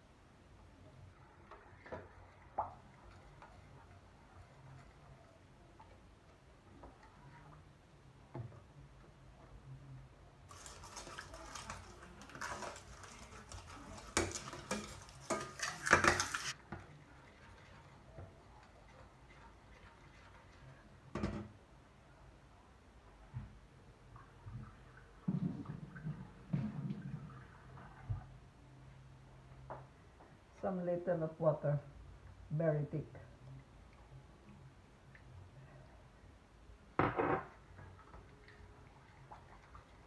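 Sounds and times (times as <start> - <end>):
utensil scraping a pan: 10.5 - 16.6.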